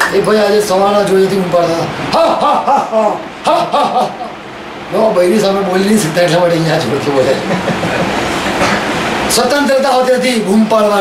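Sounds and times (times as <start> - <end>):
group of people reacting: 2.1 - 4.4.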